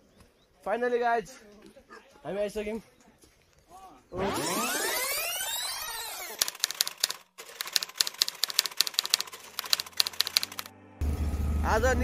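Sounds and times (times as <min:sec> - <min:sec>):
typewriter keys clacking: 0:06.4 - 0:10.7.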